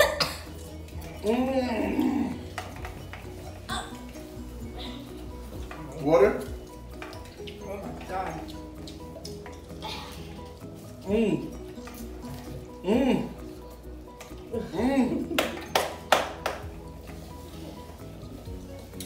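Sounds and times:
metal forks clinking on glass bowls: 0:00.0 - 0:14.5
background music: 0:00.0 - 0:19.0.

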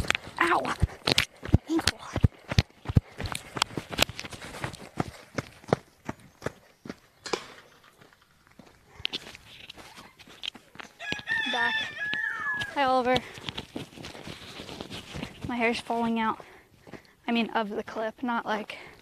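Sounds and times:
footsteps running on gravel: 0:00.0 - 0:07.1, 0:08.0 - 0:17.1
rooster crowing: 0:10.9 - 0:12.8.

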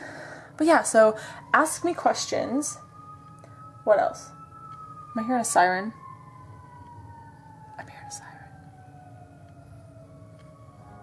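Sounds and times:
distant muffled fire truck siren: 0:00.0 - 0:11.0.

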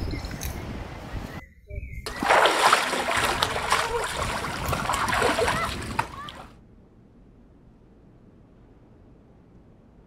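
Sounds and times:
voices calling out: 0:02.1 - 0:06.5
water splashing in a pool: 0:02.1 - 0:06.5.

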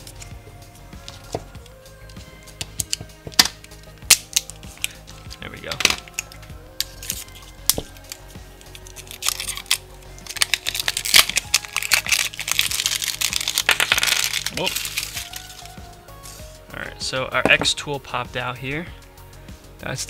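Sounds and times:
foil wrapper crinkling and tearing: 0:02.8 - 0:16.5
knife scraping foil-wrapped block: 0:06.8 - 0:16.5.

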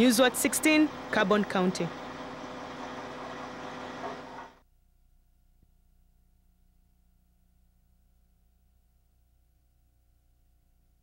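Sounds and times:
fire truck engine running: 0:00.0 - 0:04.6
outdoor noise: 0:00.0 - 0:04.6.

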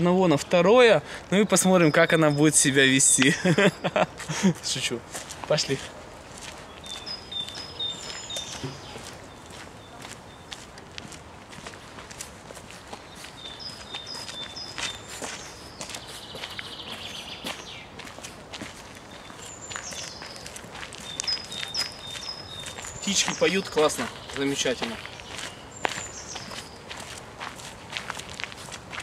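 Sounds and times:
footsteps crunching on dirt path: 0:03.1 - 0:29.0
songbirds whistling: 0:06.7 - 0:10.6, 0:13.1 - 0:17.9, 0:19.1 - 0:26.8
buzzy bird trill: 0:21.0 - 0:26.7.

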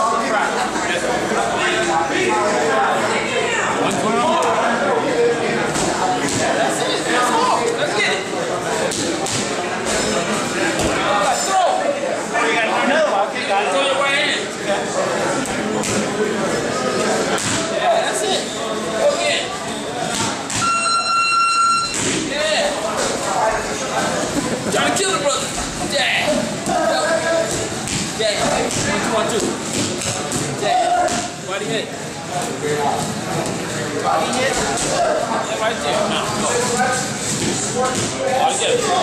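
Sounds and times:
men talking: 0:00.0 - 0:03.2, 0:03.8 - 0:20.1, 0:22.2 - 0:39.0
murmur of voices: 0:00.0 - 0:39.0.

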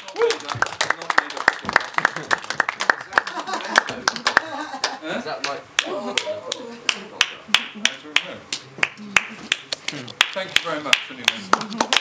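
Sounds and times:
sharp claps: 0:00.0 - 0:12.0.

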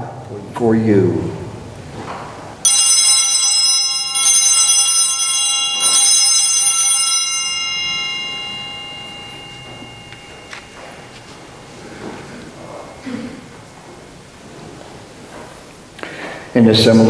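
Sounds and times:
altar bells ringing: 0:02.6 - 0:14.3.

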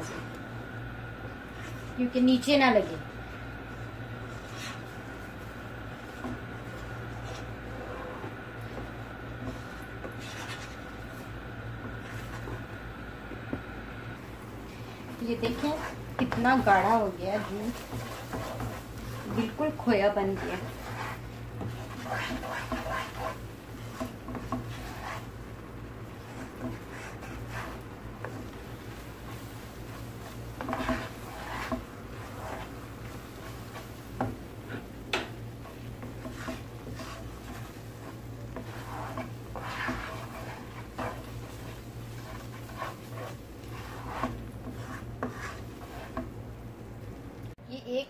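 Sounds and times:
low steady hum: 0:00.0 - 0:48.0
wooden spatula scraping metal pan: 0:06.0 - 0:11.2, 0:15.0 - 0:25.4, 0:26.1 - 0:46.4.

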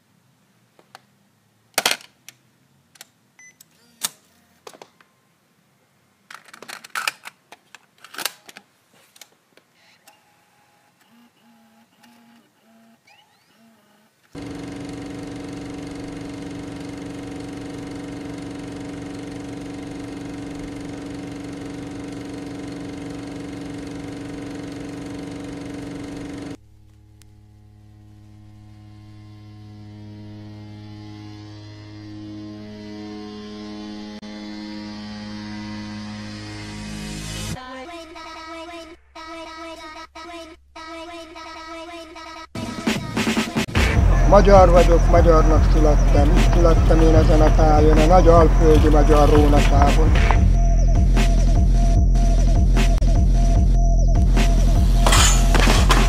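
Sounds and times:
electric hum with hiss: 0:14.4 - 0:37.6.

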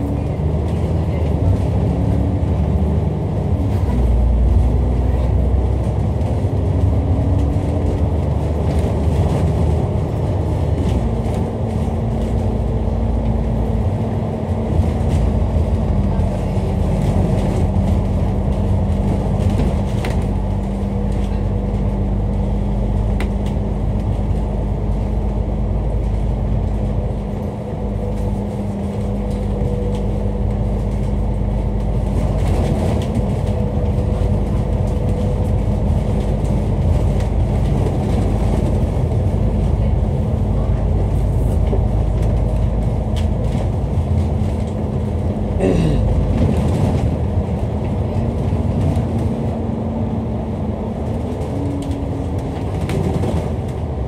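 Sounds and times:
bus engine running: 0:00.0 - 0:54.0
road noise: 0:00.0 - 0:54.0.

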